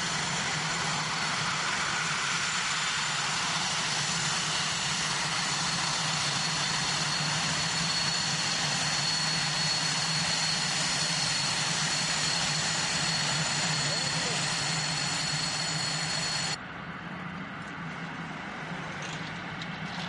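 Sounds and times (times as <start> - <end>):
jet engine rushing: 0.0 - 16.6
high turbine whines: 0.0 - 19.9.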